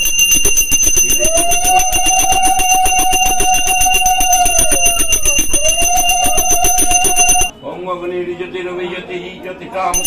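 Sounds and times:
hand bell rung rapidly: 0.0 - 7.5.

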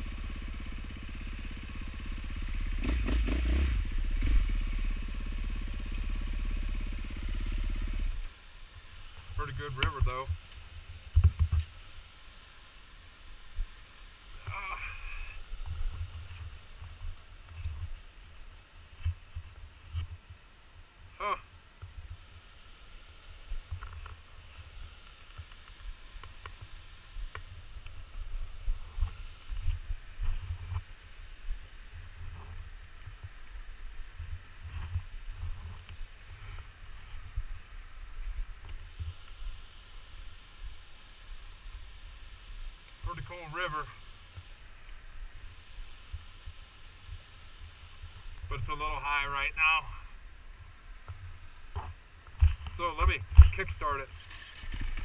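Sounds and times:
wind rumbling on microphone: 7.9 - 12.1, 13.2 - 22.4, 23.2 - 55.0.

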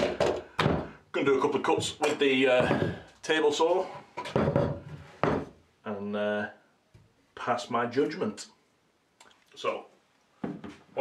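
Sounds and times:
wooden boards knocking and scraping: 0.0 - 1.0, 1.6 - 3.2, 3.9 - 5.6
person speaking: 1.1 - 4.0.

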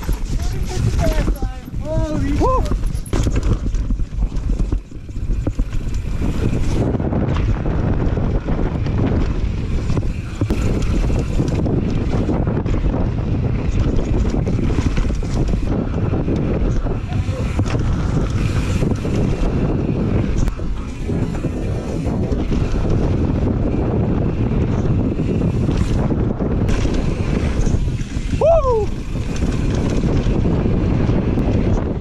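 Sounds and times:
bike rattling: 0.0 - 32.0
tyres rolling over dirt and rock: 0.0 - 32.0
wind on microphone: 0.0 - 32.0.

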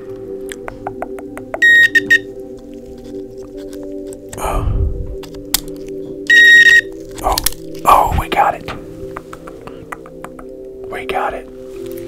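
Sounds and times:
high electronic buzzer beep: 1.6 - 2.3, 6.3 - 6.9
metal tweezers clicking: 5.2 - 6.3.

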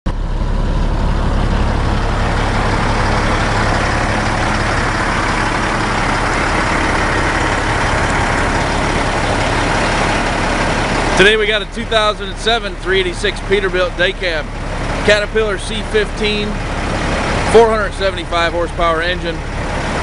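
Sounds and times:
diesel engine idling: 0.1 - 20.0.

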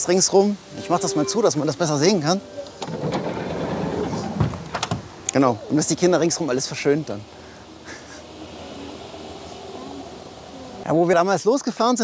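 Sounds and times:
sliding van door rolling: 2.8 - 5.2.

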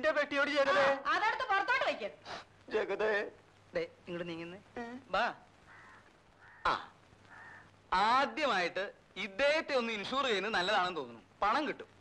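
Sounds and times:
crows cawing: 5.6 - 7.8.

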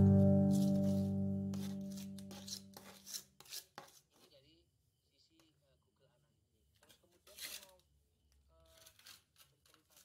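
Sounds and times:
background music held chord: 0.0 - 2.2
spatula scraping wet mortar: 0.5 - 4.3.

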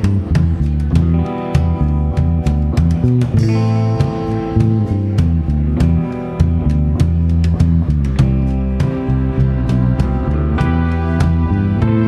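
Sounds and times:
bass: 0.0 - 12.0
guitar: 0.0 - 12.0
steady drum beat: 0.0 - 12.0.

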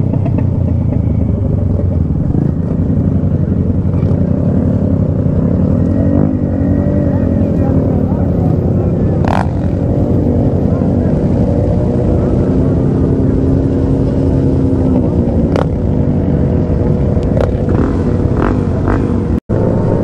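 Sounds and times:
motorcycle engines revving: 0.0 - 20.0.

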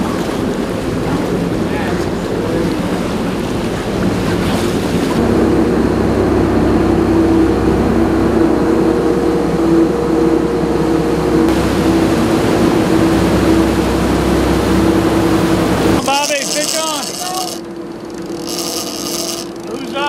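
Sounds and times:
boat engines droning: 0.0 - 20.0
water rushing: 0.0 - 20.0
wind: 0.0 - 20.0.

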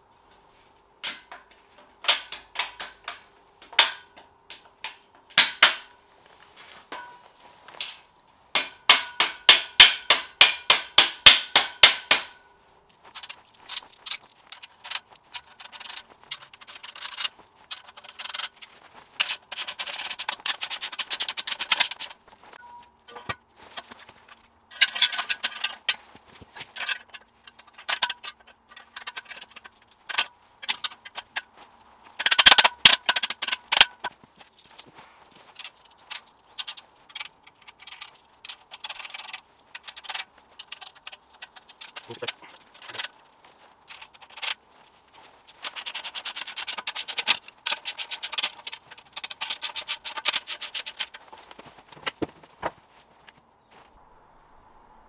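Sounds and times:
metal clinks and knocks: 1.0 - 6.0, 6.8 - 53.3.

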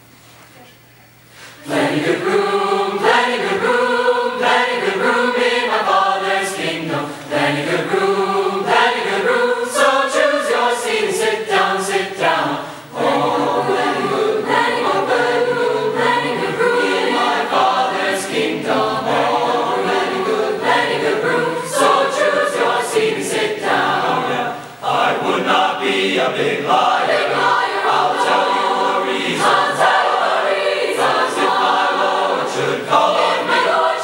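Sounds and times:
choir singing in harmony: 1.6 - 34.0.

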